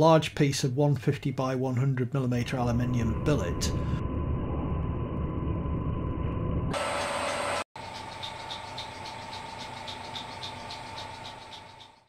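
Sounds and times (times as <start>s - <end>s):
whine with fast even ticking: 2.4s - 12.0s.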